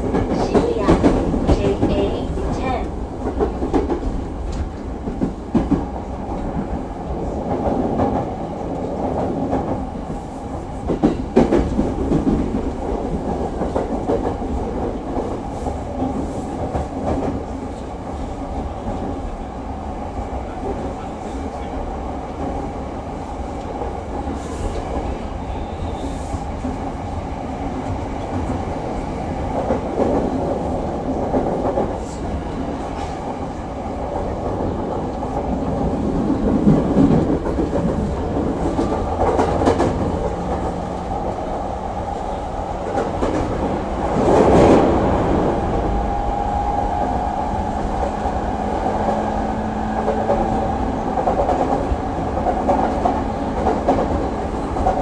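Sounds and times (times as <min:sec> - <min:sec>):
sharp clicks of train: 0:00.0 - 0:06.8, 0:10.8 - 0:17.9, 0:23.6 - 0:25.2, 0:29.5 - 0:33.4, 0:34.1 - 0:41.3, 0:42.8 - 0:44.9, 0:47.9 - 0:55.0
train running noise: 0:00.0 - 0:55.0.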